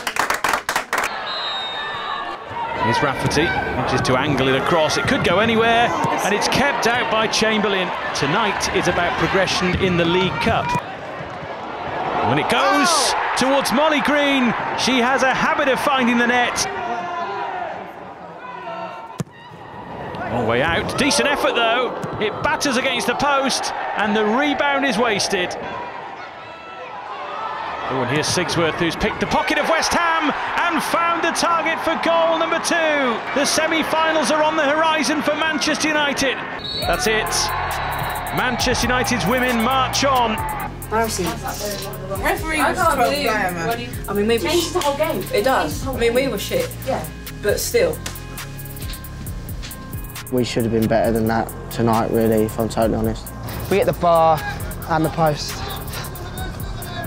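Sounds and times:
group clapping quickly: 0:00.0 - 0:01.2, 0:44.7 - 0:45.0
stadium crowd hum: 0:00.0 - 0:57.0
murmur of voices: 0:37.1 - 0:48.0, 0:53.4 - 0:57.0.

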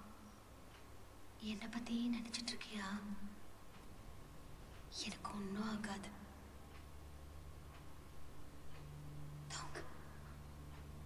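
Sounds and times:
person whispering: 0:09.5 - 0:10.4.

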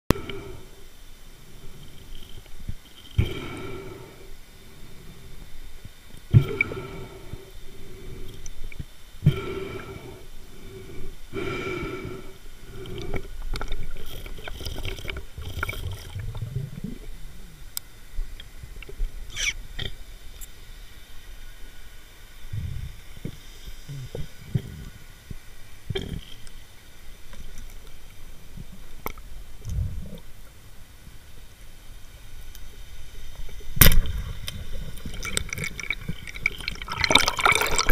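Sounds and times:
low rumbling of water: 0:00.1 - 0:37.9.

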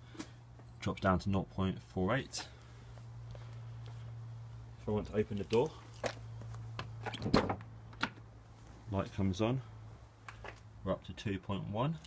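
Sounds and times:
steady low hum: 0:00.0 - 0:11.7.

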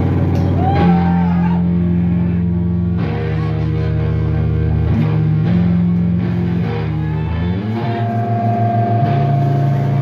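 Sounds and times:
electric guitars and bass droning: 0:00.0 - 0:10.0.

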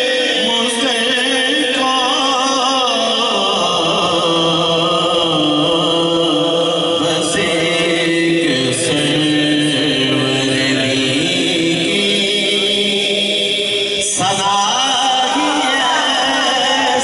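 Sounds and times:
man singing through a microphone: 0:00.0 - 0:17.0.

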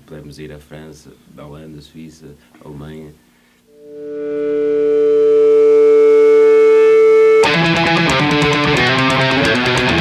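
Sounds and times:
electric guitar sustained tone: 0:03.7 - 0:10.0.

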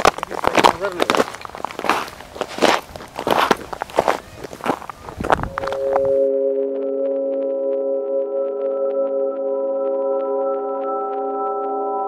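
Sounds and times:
footsteps on dry earth: 0:00.0 - 0:06.3
drone of held tones: 0:05.4 - 0:12.0.

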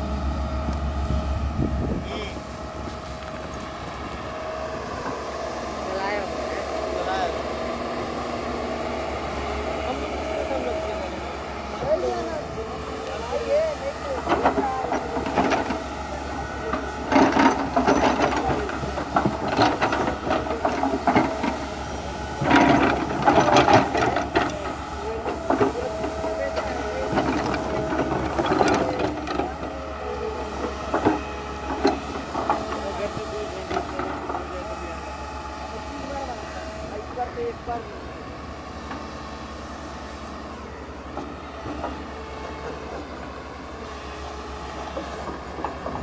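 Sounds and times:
excavator engine humming: 0:00.0 - 0:46.0.

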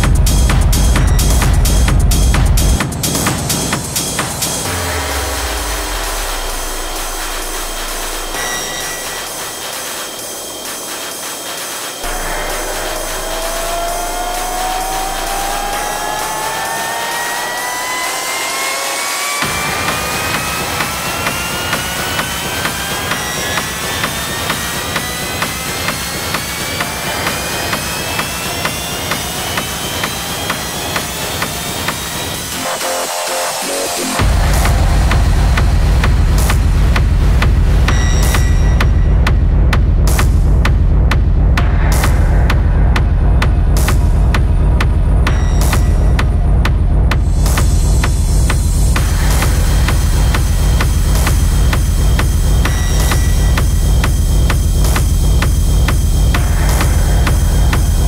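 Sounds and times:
driving techno beat: 0:00.0 - 0:58.0
rising synth sweep: 0:12.0 - 0:21.2, 0:32.6 - 0:36.4.

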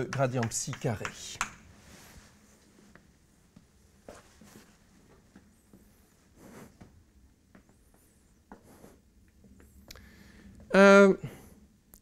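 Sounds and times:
chalk tapping on blackboard: 0:00.1 - 0:01.6.

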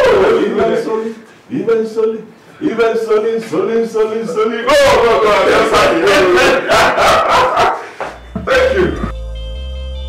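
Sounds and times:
man shouting and laughing: 0:04.7 - 0:07.9.

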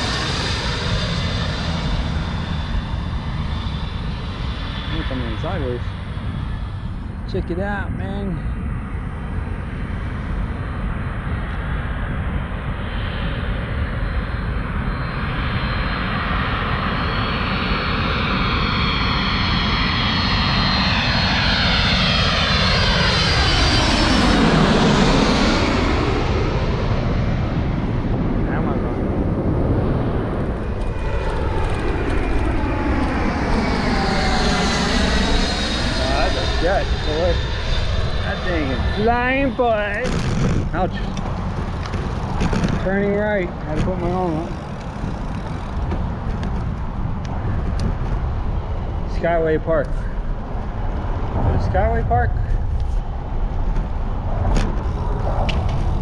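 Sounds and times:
jet airliner passing overhead: 0:00.0 - 0:56.0.

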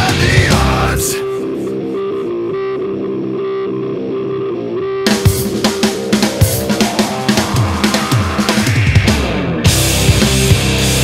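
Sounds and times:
electric guitar riff with effects: 0:00.0 - 0:11.0.

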